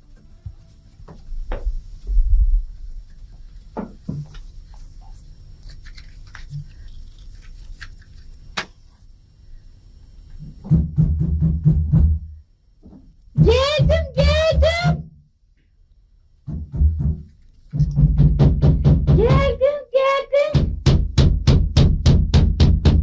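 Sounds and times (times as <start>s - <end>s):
low rumble: 2.0s - 3.1s.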